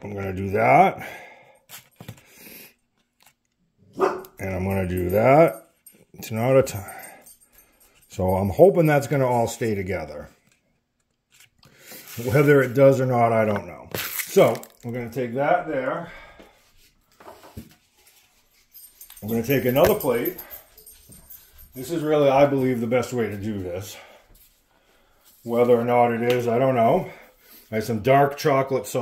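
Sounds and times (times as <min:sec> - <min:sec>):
soft handling noise: 0:09.0 - 0:26.6.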